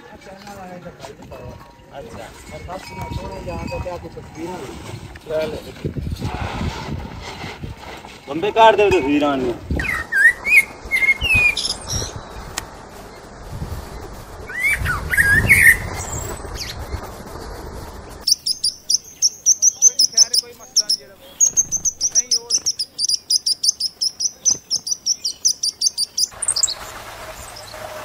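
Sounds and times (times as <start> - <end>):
small bird chirping: 9.8 - 13.3, 14.0 - 17.1, 18.1 - 26.9
short rising calls: 9.8 - 28.0.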